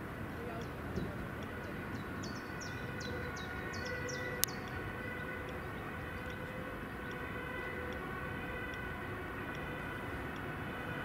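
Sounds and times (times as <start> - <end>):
steady distant tone: 0.0 - 11.0
birds chirping: 0.3 - 10.4.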